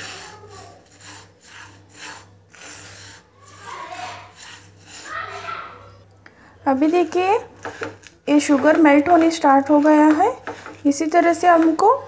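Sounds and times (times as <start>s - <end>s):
spatula scraping sugar in pan: 0.0s - 6.0s, 6.7s - 12.0s.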